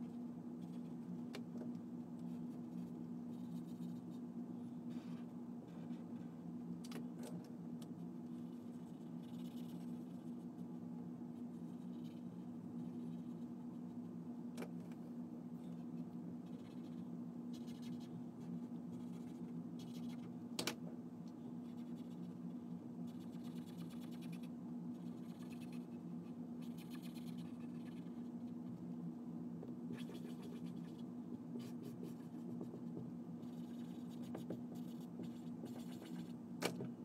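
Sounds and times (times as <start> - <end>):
steady low hum: 0.0 - 37.0
markers scribbling on paper: 29.9 - 31.0, 31.6 - 36.3.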